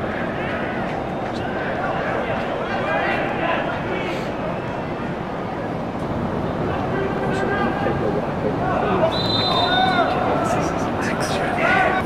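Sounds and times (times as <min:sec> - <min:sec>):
steady background noise: 0:00.0 - 0:12.0
players shouting: 0:06.6 - 0:12.0
short high whistle: 0:09.1 - 0:10.0.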